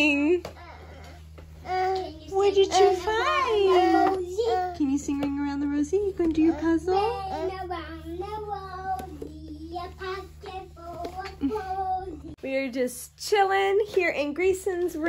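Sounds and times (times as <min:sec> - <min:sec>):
low steady hum: 0:00.0 - 0:15.0
child singing: 0:06.9 - 0:12.3.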